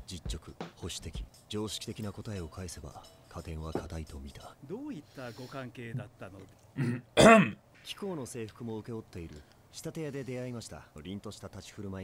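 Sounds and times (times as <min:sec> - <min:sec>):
background dialogue: 0:01.5 - 0:10.7
man clearing throat: 0:06.8 - 0:07.6.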